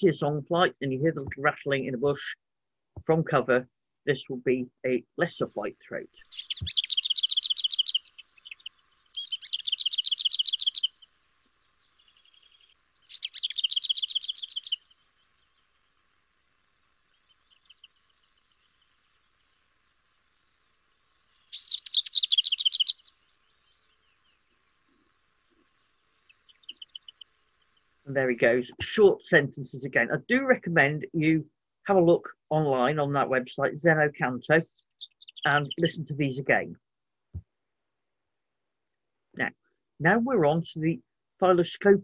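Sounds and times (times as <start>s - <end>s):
faint soft bird notes: 6.1s - 28.1s, 34.6s - 35.9s
bird singing dry rattles: 6.2s - 16.0s, 16.7s - 27.9s, 34.6s - 35.8s.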